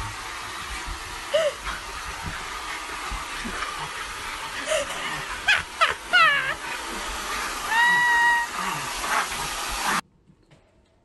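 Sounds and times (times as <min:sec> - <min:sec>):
hair dryer blowing: 0:00.0 - 0:10.0
dog yelping and whining: 0:04.6 - 0:06.8, 0:07.4 - 0:09.5.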